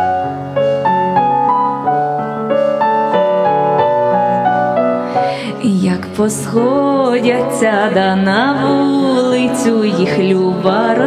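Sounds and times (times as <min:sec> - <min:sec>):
keyboard instrumental melody: 0:00.0 - 0:11.0.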